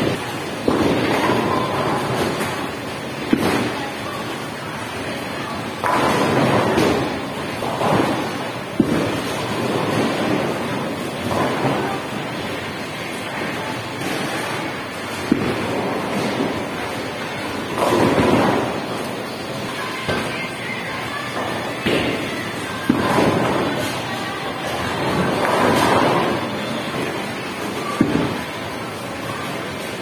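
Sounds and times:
bowling balls rumbling: 0:00.0 - 0:20.6, 0:21.3 - 0:30.0.

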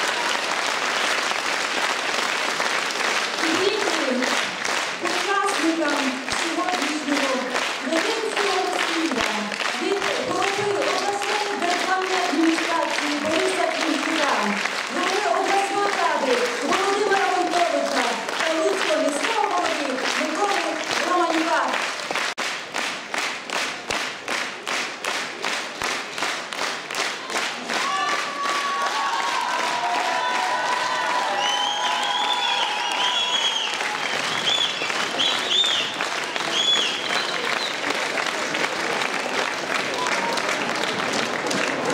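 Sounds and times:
audience clapping: 0:00.0 - 0:41.9.

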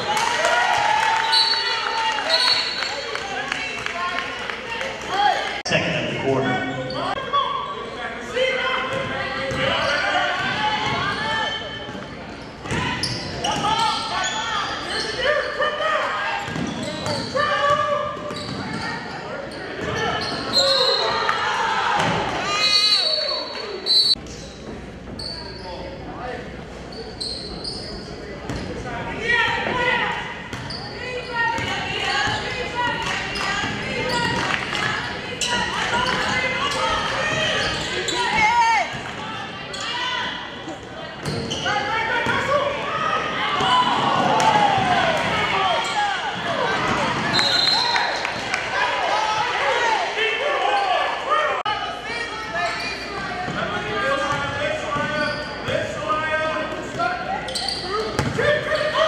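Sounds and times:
sneakers squeaking: 0:01.1 - 0:03.6, 0:08.8 - 0:15.6, 0:16.3 - 0:21.3, 0:22.0 - 0:28.9, 0:29.5 - 0:42.6, 0:43.2 - 0:48.4, 0:52.4 - 0:56.2, 0:56.9 - 0:59.0.

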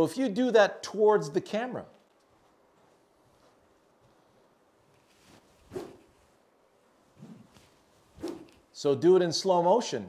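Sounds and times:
golf club swing whoosh: 0:05.3 - 0:06.2, 0:07.1 - 0:08.7.

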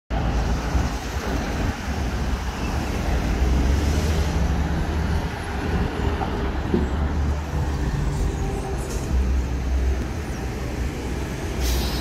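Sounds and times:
city road traffic rumble: 0:00.1 - 0:12.0.

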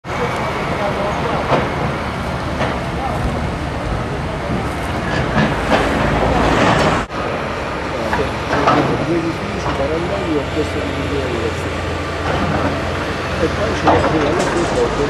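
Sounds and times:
faint voices: 0:00.0 - 0:15.0
site machinery: 0:00.0 - 0:15.0
traffic: 0:00.0 - 0:15.0.

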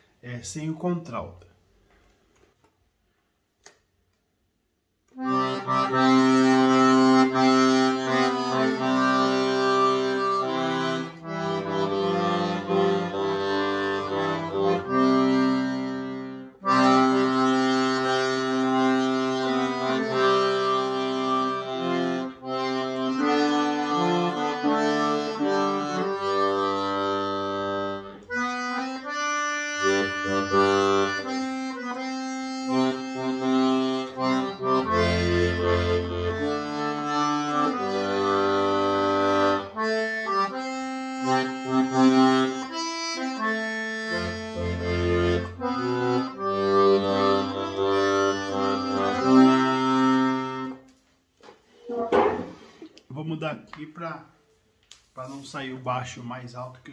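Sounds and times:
accordion playing hymn: 0:05.1 - 0:51.0.

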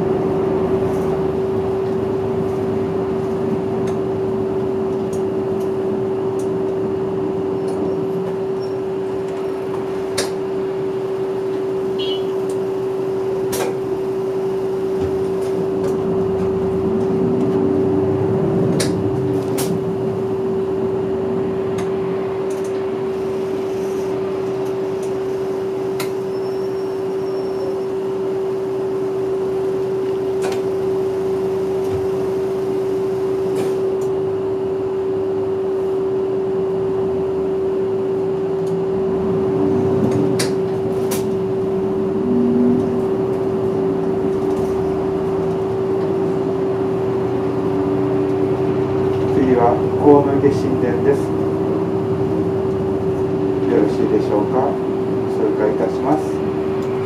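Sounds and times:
bus engine and road rumble: 0:00.0 - 0:57.0
steady hum: 0:00.0 - 0:57.0
rattle clicks in bus cabin: 0:03.2 - 0:06.8, 0:07.6 - 0:08.4, 0:09.2 - 0:10.4, 0:13.5 - 0:13.8, 0:18.7 - 0:19.9, 0:21.7 - 0:22.9, 0:25.9 - 0:26.3, 0:30.1 - 0:30.8, 0:40.0 - 0:41.5.

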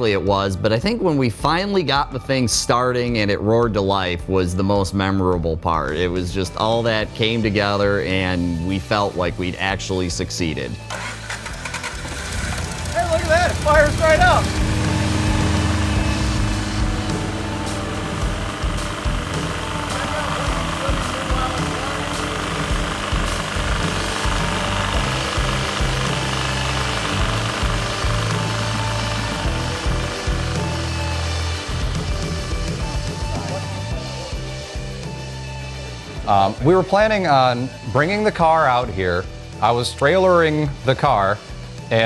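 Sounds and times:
background music: 0:00.0 - 0:42.0
car engine running: 0:10.8 - 0:36.2.

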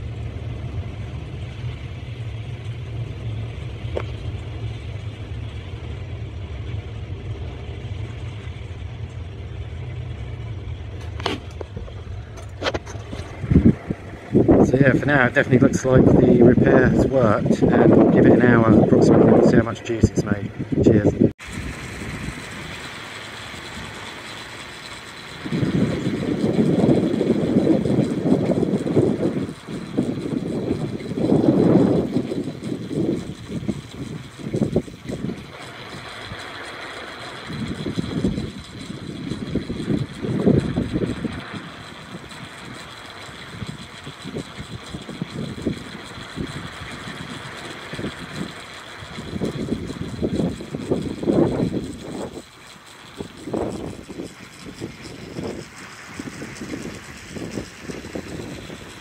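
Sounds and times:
gusty wind on microphone: 0:11.0 - 0:24.2, 0:25.2 - 0:36.4, 0:37.4 - 0:59.0.

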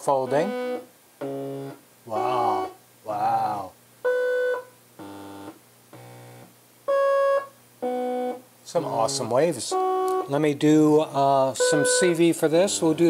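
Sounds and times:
buzzy synthesizer notes: 0:00.0 - 0:02.8.

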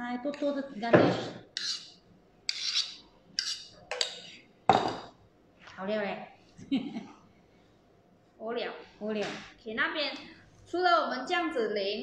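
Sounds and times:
spoon scraping metal bowl: 0:01.3 - 0:04.2.

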